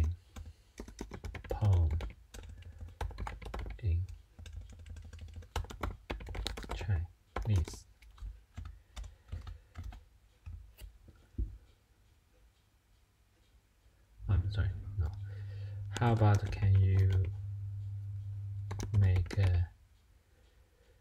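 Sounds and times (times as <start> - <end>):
computer keyboard typing: 0.0 - 10.9, 15.0 - 19.7.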